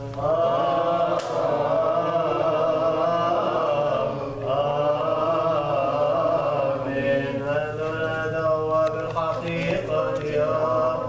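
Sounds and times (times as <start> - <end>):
unaccompanied liturgical chant: 0.0 - 11.0.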